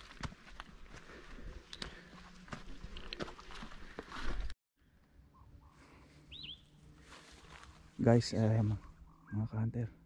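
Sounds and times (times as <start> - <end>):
faint bird chirp: 4.8 - 6.8, 8.8 - 9.7.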